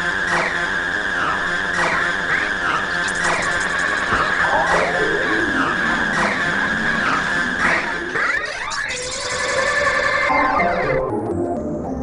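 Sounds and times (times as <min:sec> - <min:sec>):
squealing synth swoops: 0:02.2 - 0:10.7
steady high synth tone: 0:02.2 - 0:10.8.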